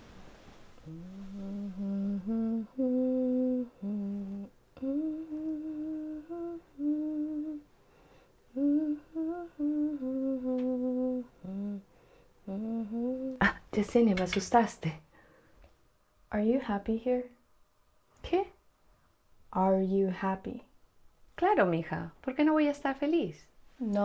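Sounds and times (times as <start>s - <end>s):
woman humming a melody: 0.8s - 7.7s, 8.5s - 11.8s, 12.4s - 13.6s.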